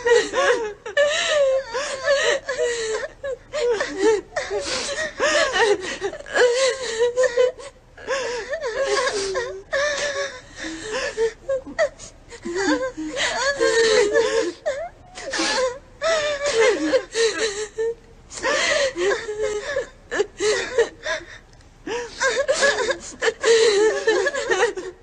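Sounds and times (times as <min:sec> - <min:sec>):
gasping breaths: 0:00.0 - 0:17.8
women wailing and sobbing: 0:00.0 - 0:25.0.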